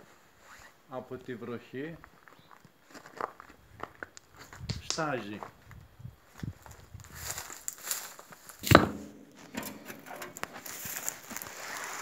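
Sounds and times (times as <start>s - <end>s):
footsteps on rocky ground: 2.0s - 12.0s
loud knock: 8.6s - 9.7s.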